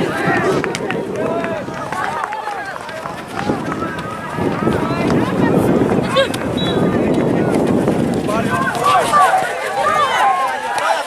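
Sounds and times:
voices shouting and calling out: 0:00.0 - 0:11.0.

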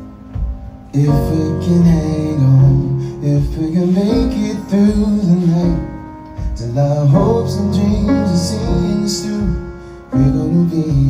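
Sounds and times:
guitar: 0:00.0 - 0:11.0.

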